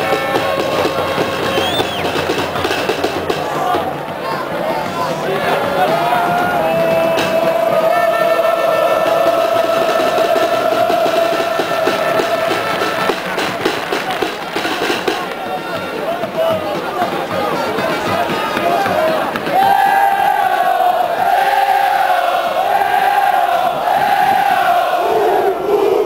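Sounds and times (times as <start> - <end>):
sharp claps or bangs: 0.0 - 4.2, 10.0 - 20.6
crowd singing: 0.0 - 26.0.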